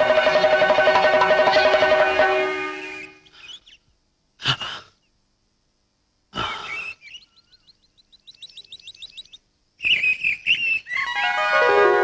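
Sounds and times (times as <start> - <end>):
flute music: 0.0 - 3.3, 9.8 - 12.0
bird chirping: 0.0 - 4.0, 6.5 - 11.2.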